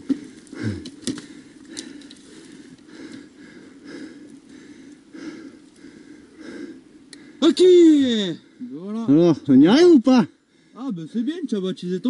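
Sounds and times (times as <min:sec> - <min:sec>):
heavy rapid breathing: 0:00.0 - 0:07.4.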